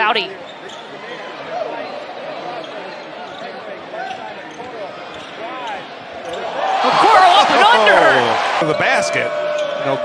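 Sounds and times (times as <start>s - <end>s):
sneakers squeaking: 0.3s - 1.1s, 2.4s - 6.6s.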